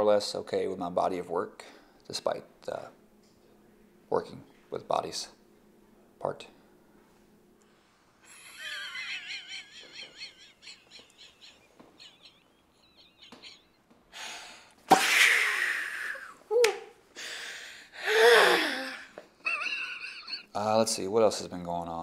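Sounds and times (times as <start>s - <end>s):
people laughing: 8.3s - 13.8s, 18.4s - 20.5s.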